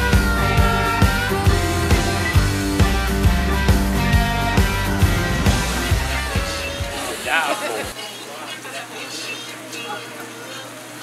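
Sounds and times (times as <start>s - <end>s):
faint scattered talk: 6.1s - 11.0s
person speaking: 6.3s - 10.8s.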